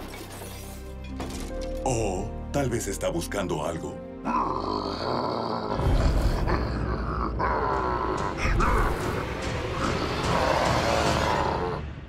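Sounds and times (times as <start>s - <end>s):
cartoon monster growling and roaring: 4.2s - 12.0s.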